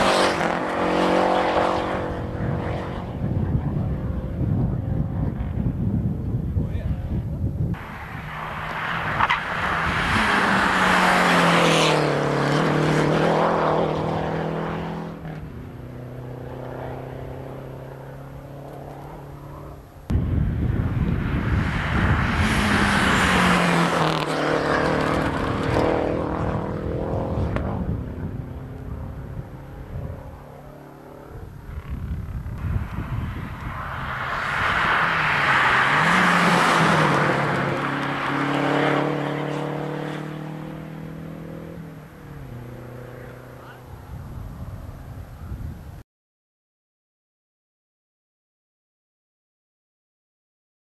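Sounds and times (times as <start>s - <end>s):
rally cars passing at high revs: 0.0s - 45.8s.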